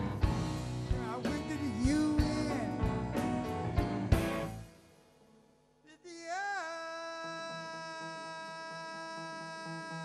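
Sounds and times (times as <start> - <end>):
blues band playing softly: 0.0 - 5.0.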